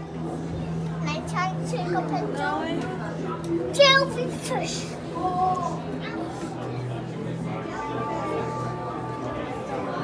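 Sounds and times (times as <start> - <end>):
children and people chattering: 0.0 - 10.0
steady low hum: 6.9 - 10.0.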